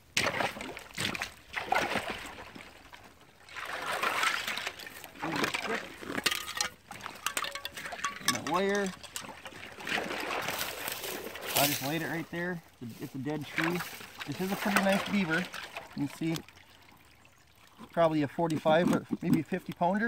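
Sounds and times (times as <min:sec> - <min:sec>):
wading and splashing in water: 0:00.0 - 0:20.0
water dripping: 0:04.5 - 0:11.6.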